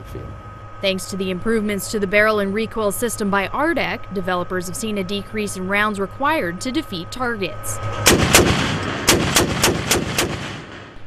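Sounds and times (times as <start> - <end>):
rumbling echo: 7.5 - 11.0
automatic cannon firing: 8.0 - 11.0.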